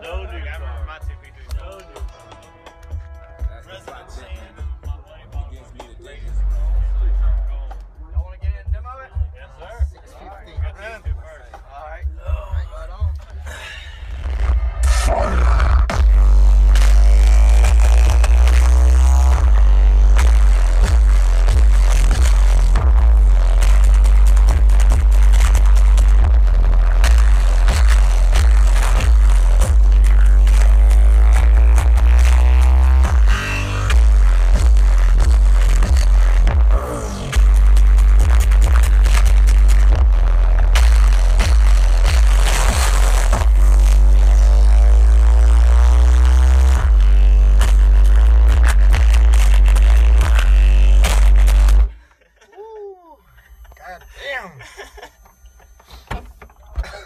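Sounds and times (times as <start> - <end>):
bass-heavy music through subwoofers: 0.0 - 52.3.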